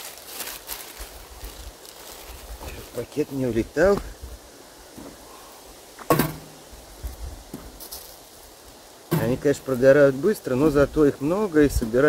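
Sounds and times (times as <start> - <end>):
metal stove door clanking: 6.1 - 6.6.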